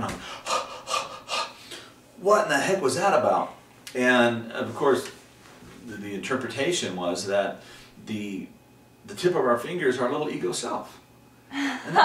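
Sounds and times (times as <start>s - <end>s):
man panting: 0.1s - 1.9s.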